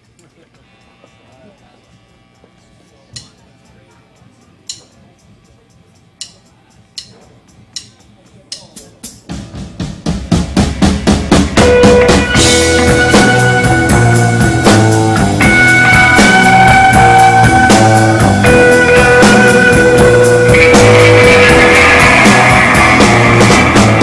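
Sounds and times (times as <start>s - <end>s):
sharp drum strokes: 7.8s - 24.0s
live rock band playing: 8.7s - 24.0s.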